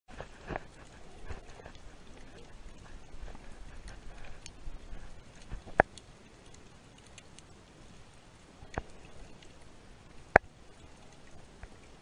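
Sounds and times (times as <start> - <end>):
underwater wash of moving water: 0.2 - 12.0.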